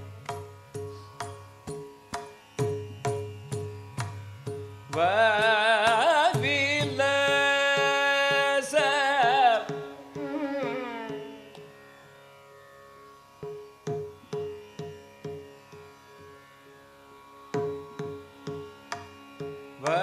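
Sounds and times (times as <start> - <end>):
tanpura drone: 0.0 - 20.0
man singing ornamented phrases: 5.0 - 11.4.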